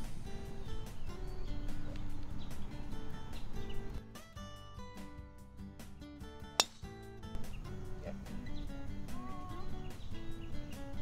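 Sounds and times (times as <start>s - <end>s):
acoustic guitar background music: 0.0s - 11.0s
golf driver striking ball: 6.5s - 7.5s.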